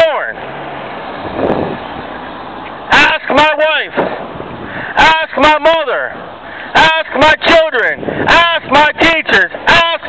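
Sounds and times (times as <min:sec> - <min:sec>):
vehicle passing: 0:00.0 - 0:06.8.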